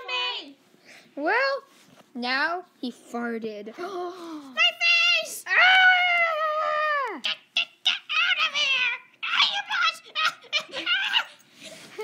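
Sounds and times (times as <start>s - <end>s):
child crying out: 9.3s - 11.4s.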